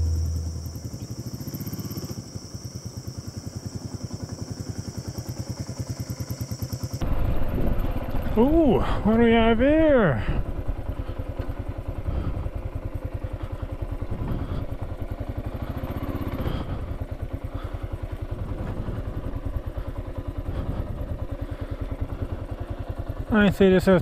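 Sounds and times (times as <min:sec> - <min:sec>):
motorcycle engine running: 0:00.0 - 0:24.0.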